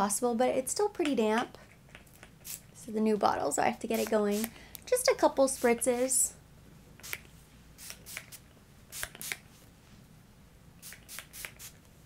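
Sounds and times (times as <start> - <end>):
spray bottle spritzing: 7.0 - 9.4, 10.8 - 11.8.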